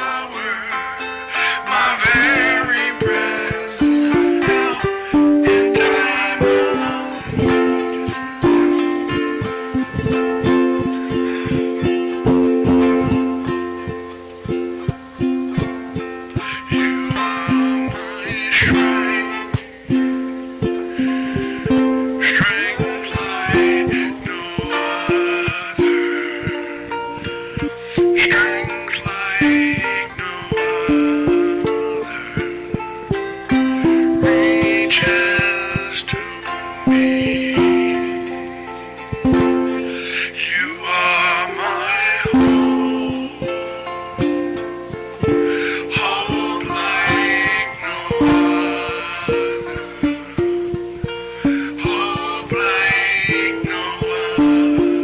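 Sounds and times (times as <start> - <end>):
guitar backing: 0.0 - 55.0
ukulele plucked and strummed: 0.0 - 55.0.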